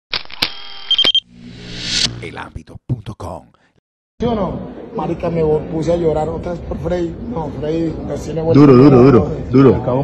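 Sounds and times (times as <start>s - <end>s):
whoosh: 1.3s - 2.2s.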